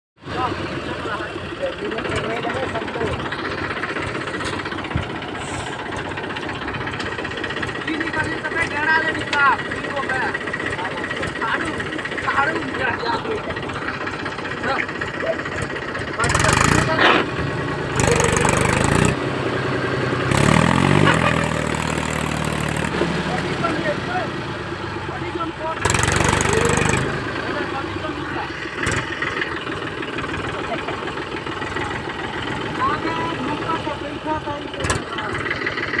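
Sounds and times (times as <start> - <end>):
tractor diesel engine revving: 0.2 - 36.0.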